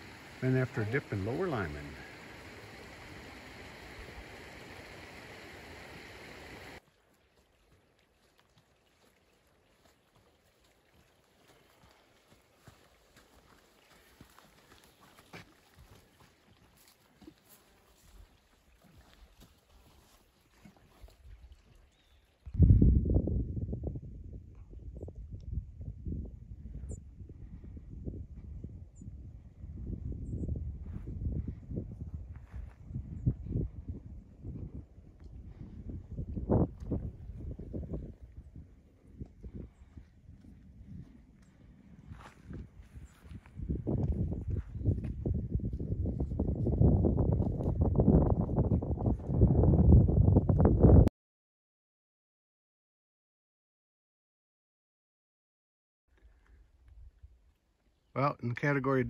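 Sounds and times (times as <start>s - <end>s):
steady hiss: 0.0s - 6.8s
wind buffeting microphone: 22.4s - 51.1s.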